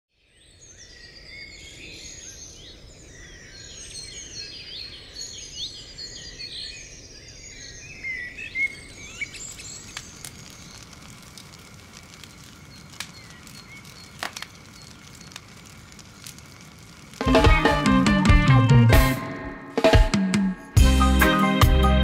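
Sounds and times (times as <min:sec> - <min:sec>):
low outdoor background noise: 0:00.2 - 0:17.9
birds chirping and singing: 0:00.4 - 0:11.0, 0:12.5 - 0:16.0
sharp clicks: 0:09.9 - 0:17.3.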